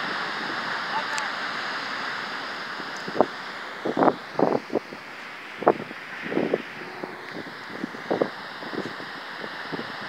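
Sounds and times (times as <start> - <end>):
surf rushing: 0.0 - 10.0
wind buffeting microphone: 2.7 - 10.0.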